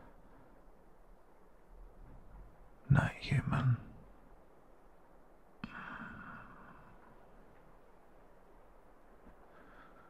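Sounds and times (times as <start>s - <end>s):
faint background hiss: 0.0s - 10.0s
man whispering: 2.8s - 4.1s.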